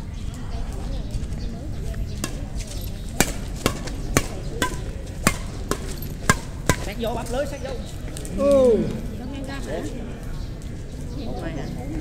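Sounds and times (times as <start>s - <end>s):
badminton racket hits: 3.1s - 7.0s.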